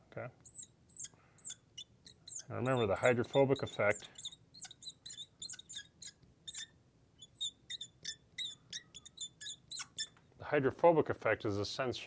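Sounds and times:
marker squeaking on glass: 0:00.4 - 0:10.2.

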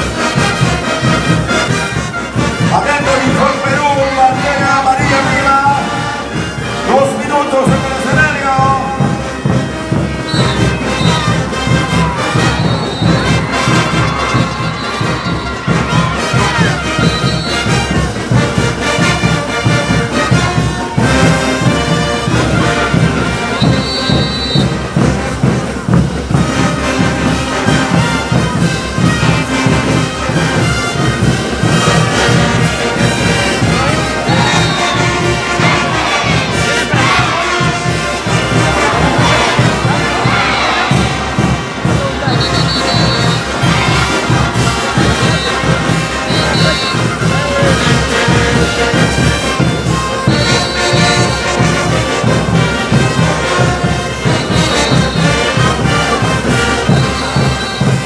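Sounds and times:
brass band playing dance music: 0:00.0 - 0:58.0
driving drum beat: 0:00.0 - 0:58.0.

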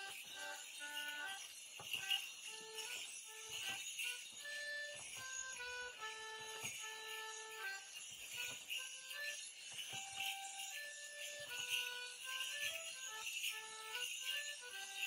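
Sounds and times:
folk dance tune on melody instrument: 0:00.0 - 0:15.0
leg bells jingling: 0:00.0 - 0:15.0.

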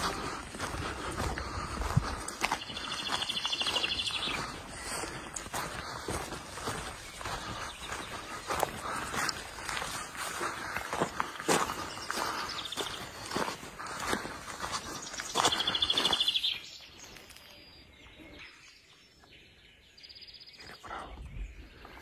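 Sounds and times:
footsteps on dirt track: 0:00.0 - 0:18.5
birds chirping: 0:00.0 - 0:22.0
rapid bird trill: 0:02.6 - 0:09.0, 0:14.9 - 0:16.9.

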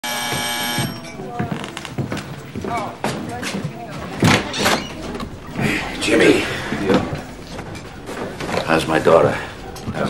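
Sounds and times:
electric doorbell buzzer: 0:00.0 - 0:01.1
murmur of people talking: 0:00.8 - 0:10.0.

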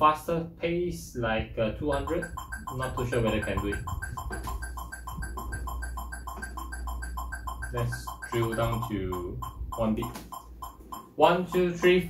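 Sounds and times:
electronic metronome beeping: 0:01.8 - 0:12.0
low-pitched metronome tick: 0:01.9 - 0:12.0.

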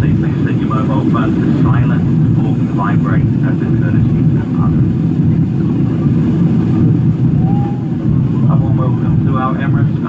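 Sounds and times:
jet engines low rumble: 0:00.0 - 0:10.0
rushing airflow: 0:00.0 - 0:10.0.

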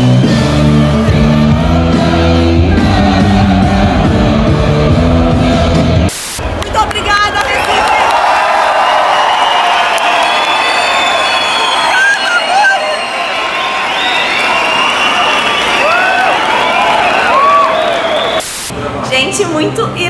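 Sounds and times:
crowd cheering and screaming: 0:06.4 - 0:19.0
voices whooping and shouting: 0:07.0 - 0:18.5.

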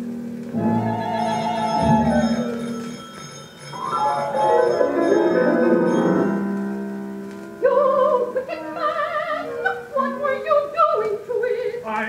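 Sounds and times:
orchestral music from a record: 0:00.1 - 0:10.8.

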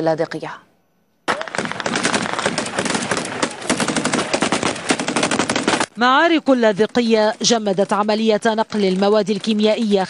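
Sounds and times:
machine gun firing: 0:01.3 - 0:05.9.

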